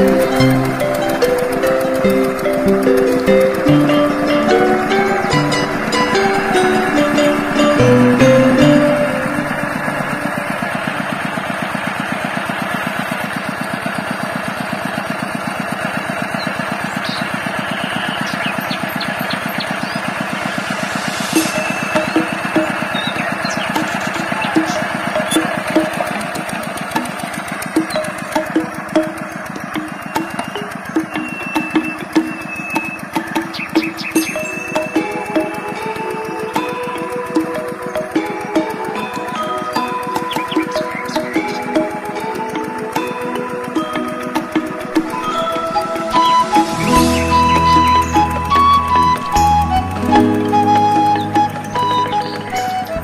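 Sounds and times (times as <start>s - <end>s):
background music with light beat: 0.0s - 12.1s, 20.6s - 53.0s
cage wheels dragging through mud: 0.0s - 49.8s
diesel engine running: 0.0s - 53.0s.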